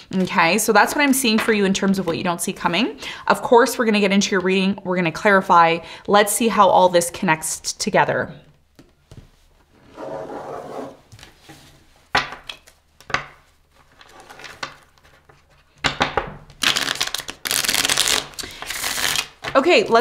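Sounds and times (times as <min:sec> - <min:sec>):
cards being shuffled: 0:16.5 - 0:20.0.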